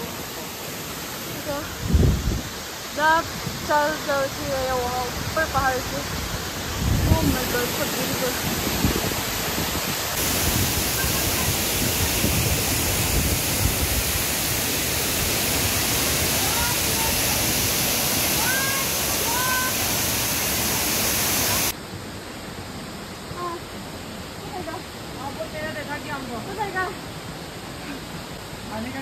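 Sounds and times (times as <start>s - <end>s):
waterfall rushing: 0.0s - 21.8s.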